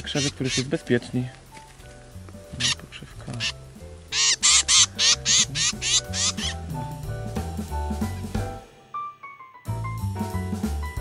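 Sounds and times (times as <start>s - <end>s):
harsh bird calls: 0.0s - 0.9s, 2.4s - 6.9s
background music: 0.0s - 11.0s.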